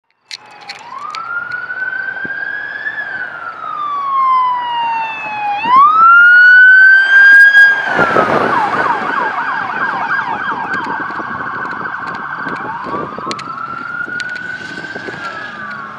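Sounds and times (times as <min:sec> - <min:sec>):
car engine and tyre noise: 0:00.1 - 0:15.9
police siren wailing and yelping: 0:00.3 - 0:15.9.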